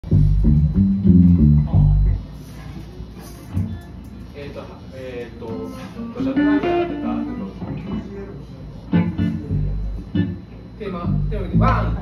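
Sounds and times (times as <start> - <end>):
electric guitars playing: 0.0 - 2.3, 5.9 - 8.0, 8.9 - 12.0
electric bass notes: 0.0 - 2.4, 6.2 - 8.0, 8.9 - 12.0.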